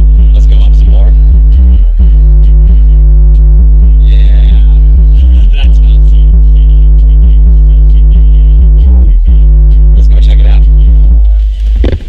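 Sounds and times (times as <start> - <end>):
bass-heavy electronic music: 0.0 - 12.0
loud deep subwoofer bass: 0.0 - 12.0.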